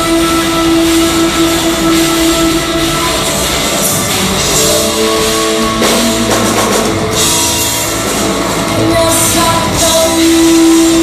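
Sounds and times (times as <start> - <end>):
distorted guitar: 0.0 - 11.0
drums hitting hard: 0.0 - 11.0
heavy rock band playing loud: 0.0 - 11.0.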